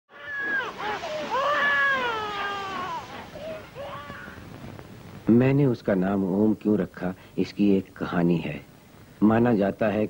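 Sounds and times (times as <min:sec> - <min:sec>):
cat-like cries: 0:00.1 - 0:04.4.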